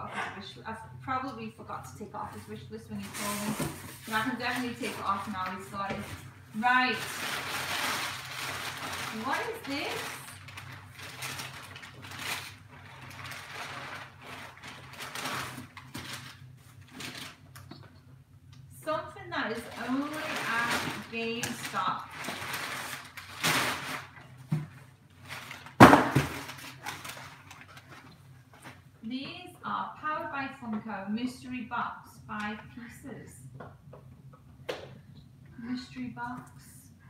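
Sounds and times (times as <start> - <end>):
packing paper rustling and crinkling: 3.0 - 17.8, 19.5 - 28.9.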